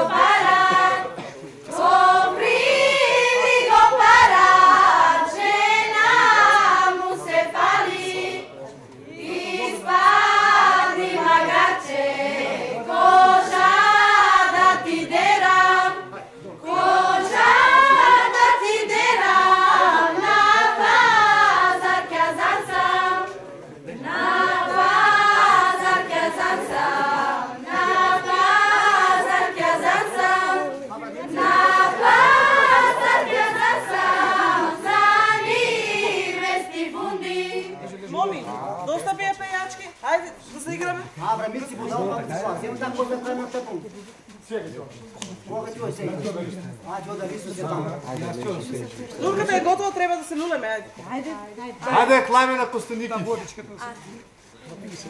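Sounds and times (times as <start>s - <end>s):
girls singing unaccompanied: 0.0s - 38.0s.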